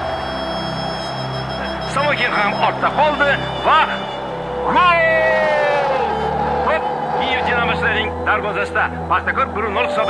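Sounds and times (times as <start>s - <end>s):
instrumental drone: 0.0s - 10.0s.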